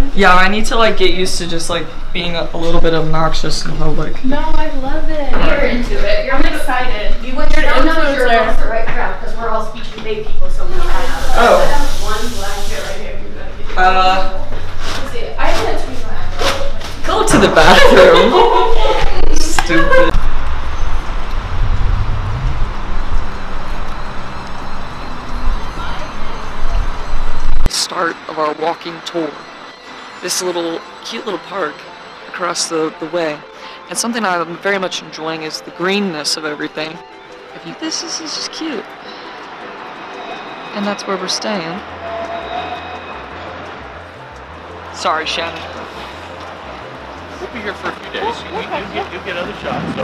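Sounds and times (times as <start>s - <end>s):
hiss: 10.7s - 13.1s
low traffic rumble: 14.3s - 30.2s, 36.5s - 50.0s
low rumble: 20.1s - 27.7s.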